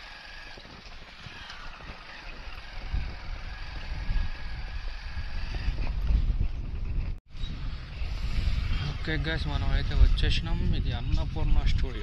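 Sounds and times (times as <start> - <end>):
motorcycle engine rumble: 0.0 - 12.0
wind buffeting microphone: 0.0 - 12.0.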